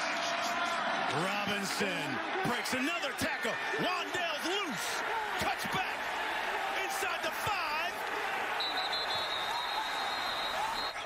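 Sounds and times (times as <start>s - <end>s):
noisy crowd voices: 0.0s - 11.0s
referee whistle blast: 8.6s - 11.0s.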